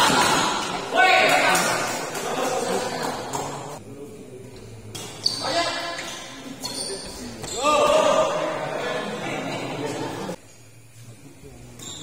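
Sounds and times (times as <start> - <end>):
voices: 0.0 - 10.4.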